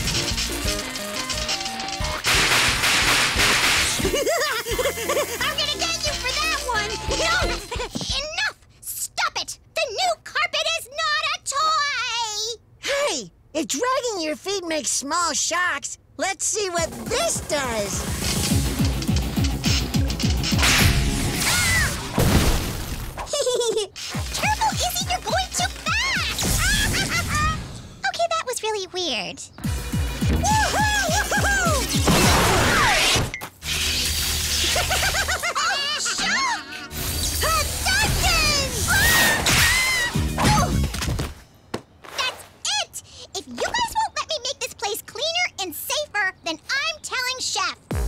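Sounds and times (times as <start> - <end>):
cartoon background music: 0.0 - 8.0, 16.5 - 22.1, 24.1 - 33.2, 33.8 - 41.0.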